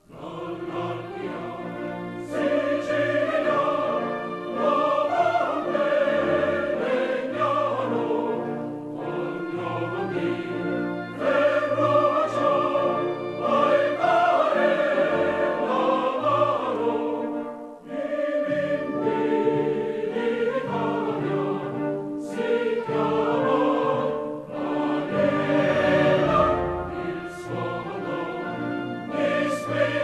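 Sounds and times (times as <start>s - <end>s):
choir singing: 0.0s - 30.0s
orchestra playing: 0.2s - 30.0s.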